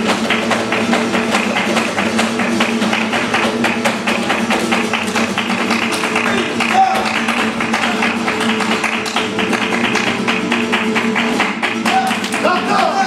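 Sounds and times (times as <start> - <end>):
acoustic guitars playing: 0.0 - 13.0
rapid hand-clapping: 0.0 - 13.0.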